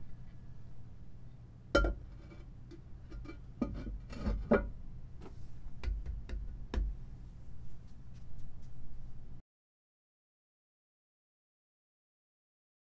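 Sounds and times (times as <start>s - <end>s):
porcelain lid clinking on tank: 1.8s - 2.0s.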